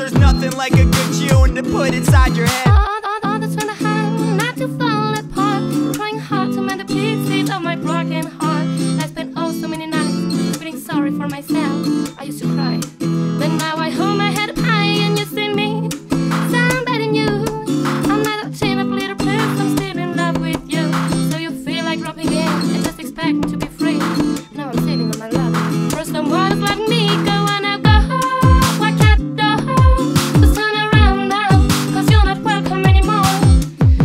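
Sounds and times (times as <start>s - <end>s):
strummed acoustic guitar: 0.0s - 34.0s
woman singing: 0.0s - 34.0s.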